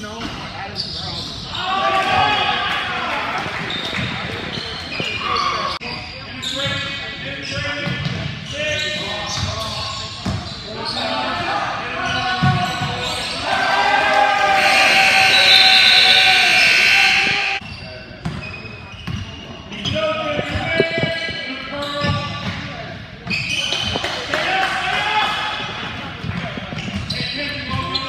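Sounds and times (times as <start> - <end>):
voices in gym: 0.0 - 28.0.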